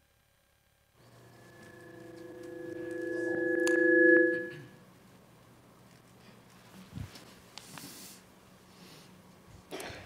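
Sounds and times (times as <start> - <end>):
sustained ringing tone: 1.0 - 4.8.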